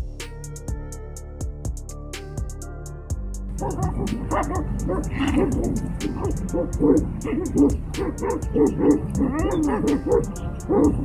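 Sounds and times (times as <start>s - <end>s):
dog and wolf snarling and yelping: 3.6s - 11.0s.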